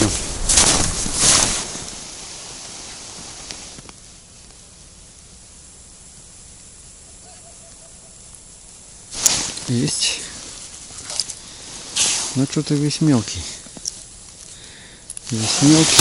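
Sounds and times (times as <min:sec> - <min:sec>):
burst of noise: 0:00.0 - 0:03.9, 0:09.0 - 0:10.8, 0:11.4 - 0:13.7, 0:14.6 - 0:16.0
faint steady hiss: 0:00.0 - 0:16.0.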